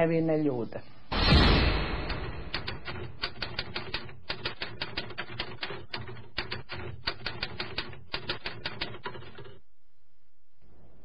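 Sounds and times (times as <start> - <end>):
typewriter keys clacking: 2.2 - 9.6.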